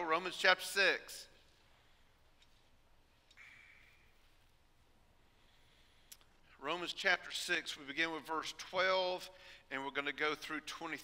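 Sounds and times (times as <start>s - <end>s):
soft rustle: 1.4s - 6.1s.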